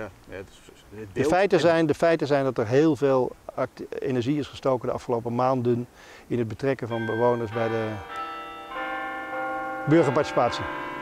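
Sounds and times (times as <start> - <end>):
bells ringing: 6.9 - 11.0.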